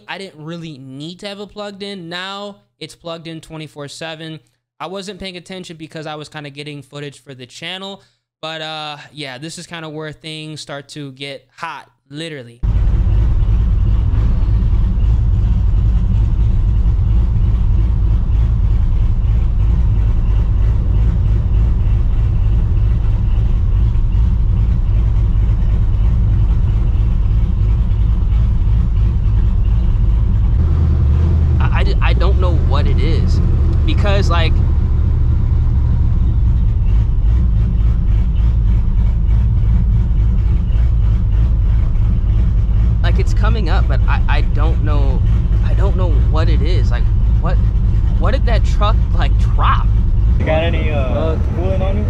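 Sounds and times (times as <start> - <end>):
car engine idling with deep rumble: 12.6 - 52.0.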